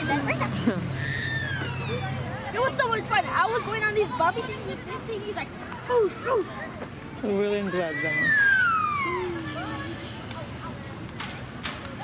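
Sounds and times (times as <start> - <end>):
outdoor ambience: 0.0 - 12.0.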